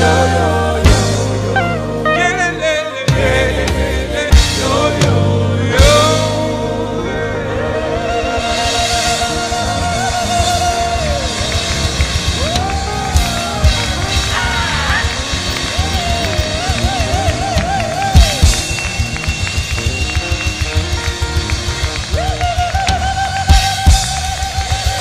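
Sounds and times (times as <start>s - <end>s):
live band music: 0.0s - 25.0s.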